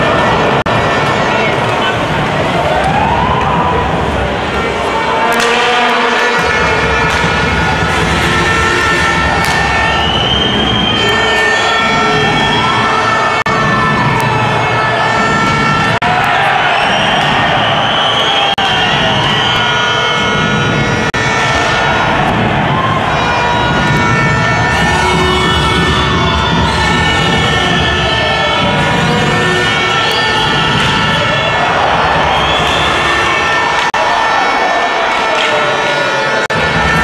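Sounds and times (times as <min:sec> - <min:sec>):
arena crowd noise: 0:00.0 - 0:37.0
siren-like wails: 0:05.3 - 0:37.0.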